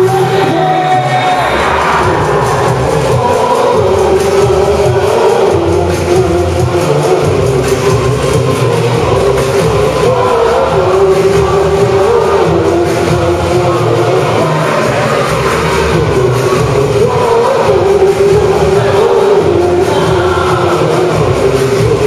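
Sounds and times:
person singing: 0.0s - 22.0s.

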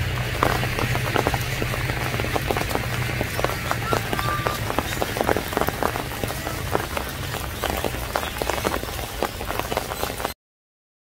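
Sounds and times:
low rumble: 0.0s - 8.3s
rain falling: 0.0s - 10.4s
raindrops clicking: 0.0s - 10.4s.

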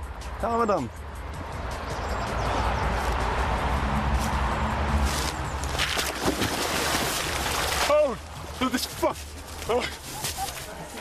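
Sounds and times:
rushing outdoor background: 0.0s - 11.0s
splashing into water: 5.6s - 8.6s
ice cracking: 5.6s - 8.9s.

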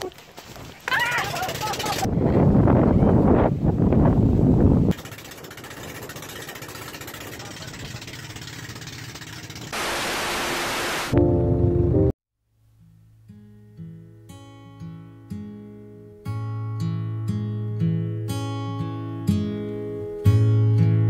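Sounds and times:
woman shouting excitedly: 0.8s - 2.0s
rushing noise of moving boat: 1.3s - 11.2s.

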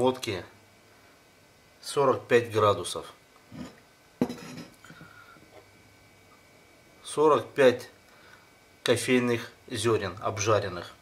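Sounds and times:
glass jar knocking on countertop: 4.2s - 4.7s.

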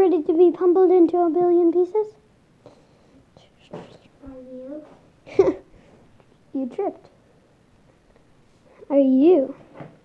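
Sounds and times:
children whispering: 3.3s - 4.8s.

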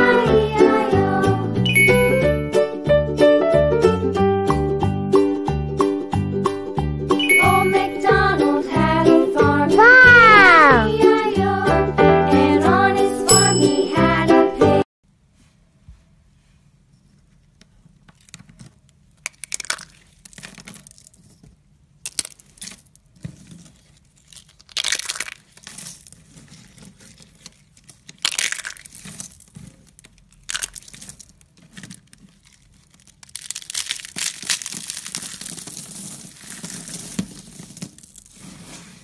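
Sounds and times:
brittle sheets crackling and crunching: 22.0s - 39.0s.

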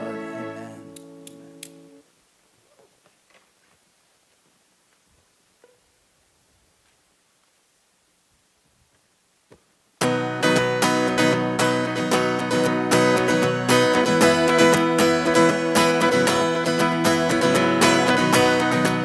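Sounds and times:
electric guitar strumming chords: 0.0s - 2.0s, 10.0s - 19.0s.

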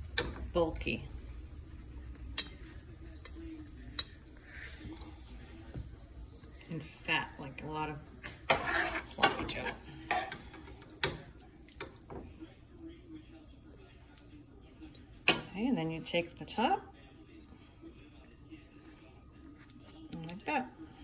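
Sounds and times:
spoon scraping a ceramic plate: 8.5s - 10.5s.

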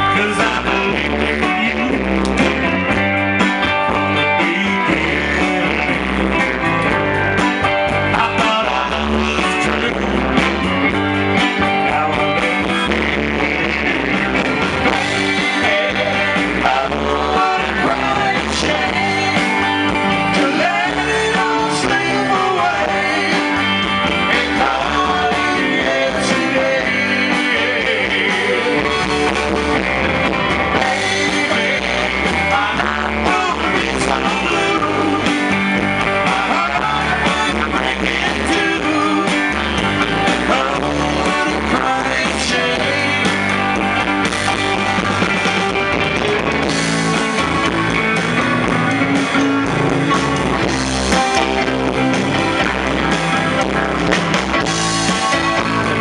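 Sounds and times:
electric guitar: 0.0s - 56.0s
live rock band: 0.0s - 56.0s.

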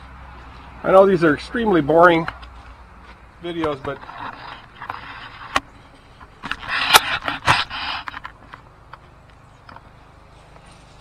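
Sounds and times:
objects scraping and rustling: 2.3s - 8.6s.

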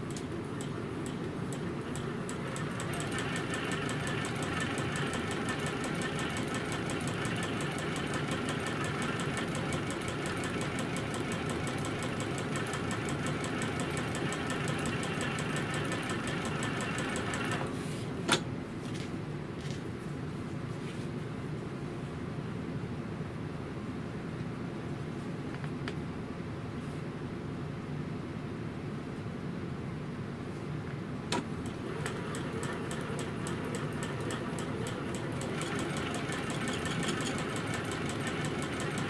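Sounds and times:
sewing machine stitching: 1.5s - 17.7s, 31.6s - 39.0s.

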